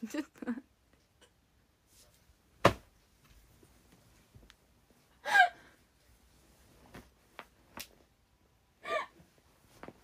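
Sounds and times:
woman gasping with laughter: 5.2s - 5.8s, 8.8s - 9.2s.

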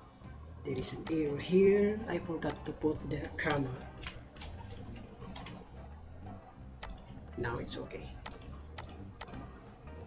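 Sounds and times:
steady low hum: 0.0s - 10.0s
keyboard keystrokes: 6.8s - 7.1s, 8.2s - 9.5s.

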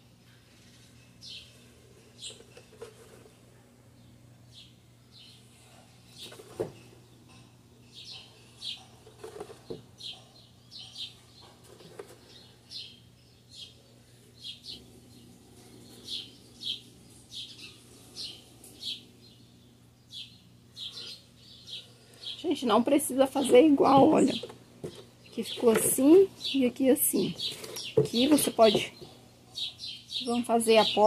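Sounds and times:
small bird chirping: 4.0s - 31.0s.

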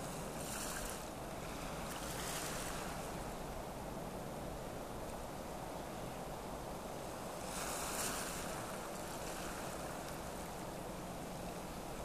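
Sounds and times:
waves washing in: 0.0s - 4.6s, 6.7s - 12.0s
wind: 0.0s - 12.0s.

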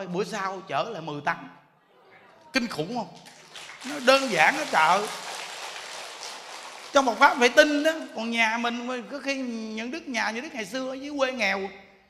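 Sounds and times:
audience applause: 3.2s - 8.0s.

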